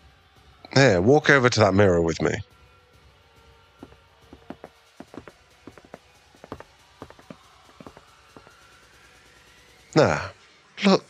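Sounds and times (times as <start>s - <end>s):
faint background music: 0.0s - 11.0s
footsteps walking: 3.8s - 8.5s.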